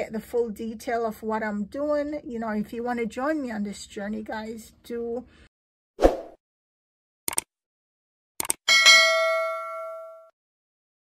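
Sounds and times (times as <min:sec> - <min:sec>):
notification bell ding: 0:08.7 - 0:10.3.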